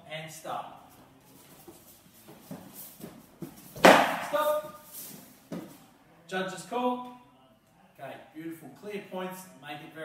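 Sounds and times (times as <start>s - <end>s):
feet shuffling: 0.8s - 5.9s
padded sticks knocking: 3.8s - 4.5s
padded stick smack: 3.8s - 4.6s.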